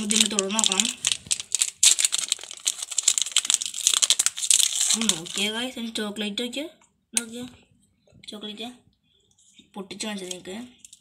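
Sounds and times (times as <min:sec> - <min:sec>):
plastic wrapper crinkling: 0:00.0 - 0:05.6.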